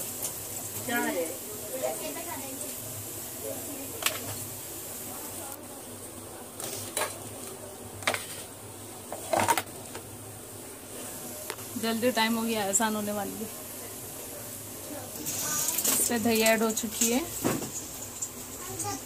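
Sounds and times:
faint hiss: 10.4 - 19.0.

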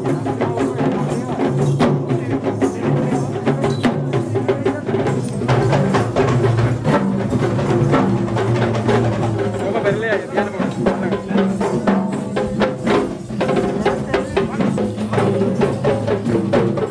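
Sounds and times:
hand drums playing fast: 0.0 - 16.9.

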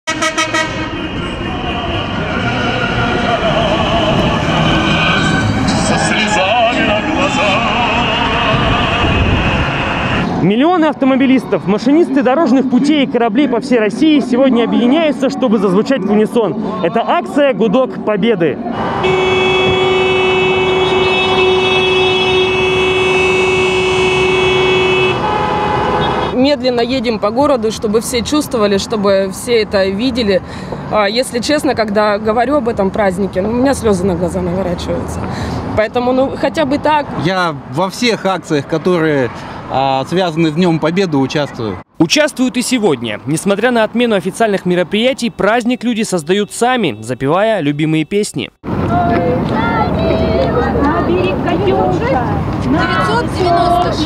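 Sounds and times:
vehicle horns honking: 0.1 - 10.4, 18.7 - 26.4, 45.0 - 48.3
passing traffic: 0.1 - 54.0.

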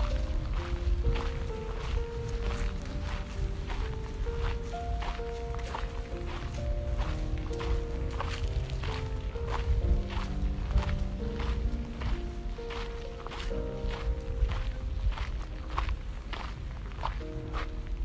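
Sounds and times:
footsteps on gravel: 0.0 - 18.0
slow melodic music: 0.0 - 18.0.

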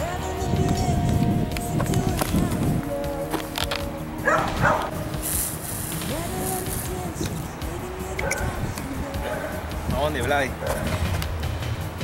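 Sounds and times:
dog barking: 4.2 - 4.9, 8.2 - 8.6, 9.2 - 9.6, 10.6 - 11.0
brief high hiss: 4.4 - 7.1.

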